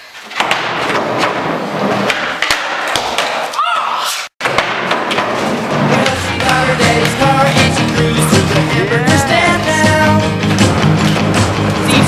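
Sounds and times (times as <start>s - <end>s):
skateboard clacks: 0.3s - 3.5s.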